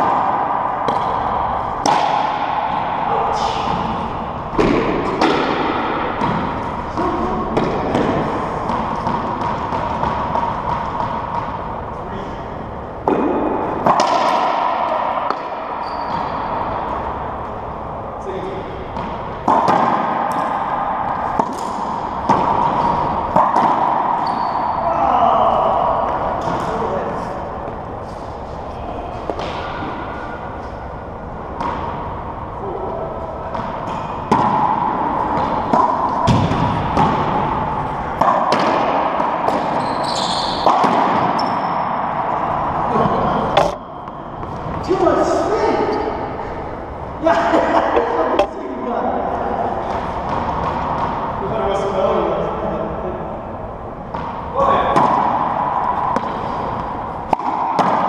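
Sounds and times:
racquetball ball hits: 0.0s - 17.9s, 18.6s - 24.9s, 29.2s - 45.0s, 45.8s - 48.6s, 49.4s - 51.9s, 53.9s - 58.0s.

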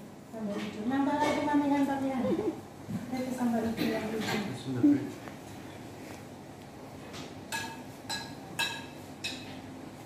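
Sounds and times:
metal spoon clinking on plate: 7.5s - 9.6s.

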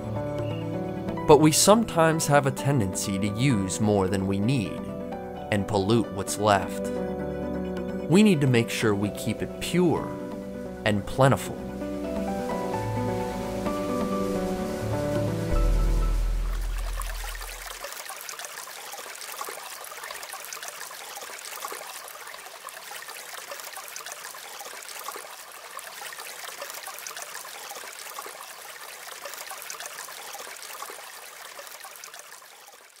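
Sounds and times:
stream water rushing and splashing: 10.2s - 33.0s.

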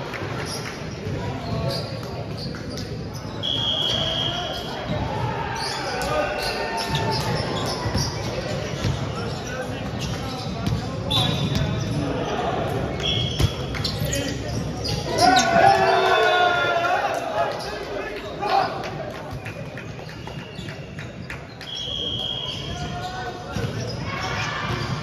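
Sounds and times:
players' voices and chatter: 0.0s - 25.0s
ball bouncing on wooden court: 9.8s - 12.0s.

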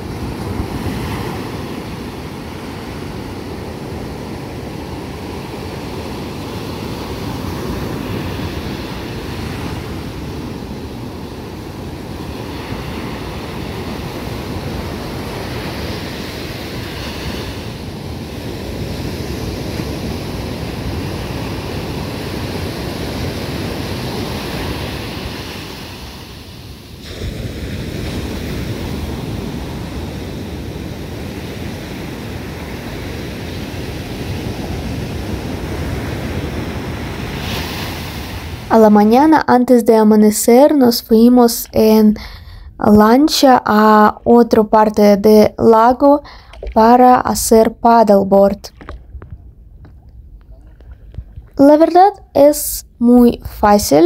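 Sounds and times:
ocean surf breaking on beach: 0.0s - 48.0s
wind on microphone: 48.5s - 53.6s.

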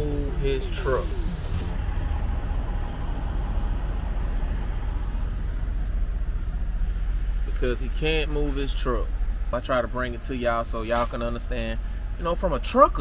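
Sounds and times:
diesel truck engine idling: 0.0s - 13.0s.

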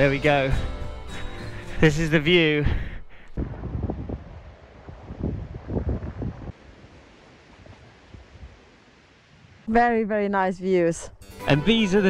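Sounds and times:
wind buffeting microphone: 2.6s - 9.7s.

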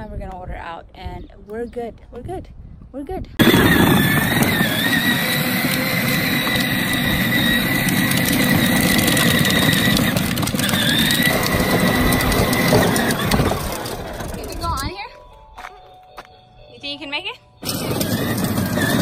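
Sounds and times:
electric motor whining: 3.4s - 14.8s, 17.6s - 19.0s
plastic wheels rumbling on concrete: 3.4s - 15.2s, 17.6s - 19.0s.

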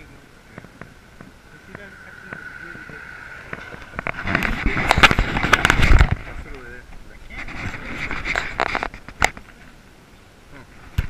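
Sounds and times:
low rumble: 0.7s - 6.6s.

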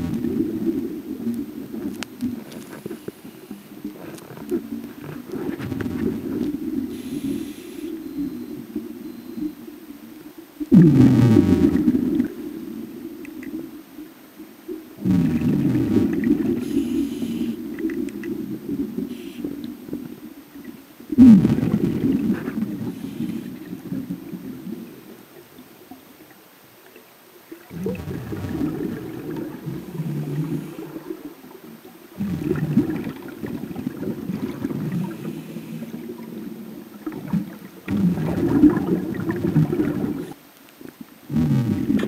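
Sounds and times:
exhaled bubbles rumbling: 0.0s - 2.8s, 3.5s - 26.3s, 27.5s - 40.4s
underwater regulator breathing: 2.5s - 8.0s, 16.5s - 17.8s.

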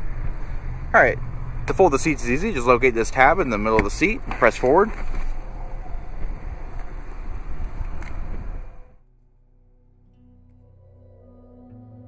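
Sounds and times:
wind rumble on microphone: 0.0s - 9.0s.

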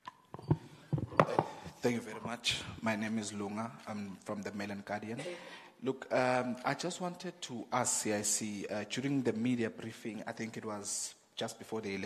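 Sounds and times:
microphone knocks and bumps: 0.3s - 1.8s
man speaking: 1.2s - 12.0s.

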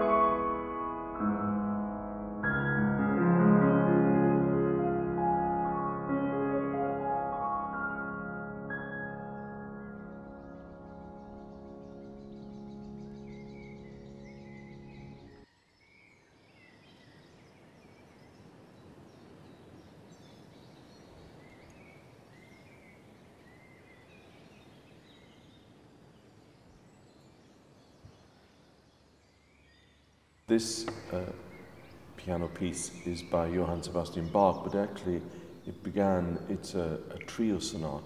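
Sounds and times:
piano chord ringing: 0.0s - 15.4s, 30.7s - 36.6s
faint outdoor ambience: 0.0s - 38.0s
birds chirping: 7.0s - 38.0s.

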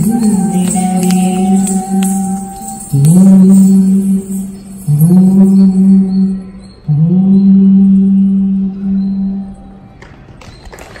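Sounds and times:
song with long held notes: 0.0s - 10.2s.

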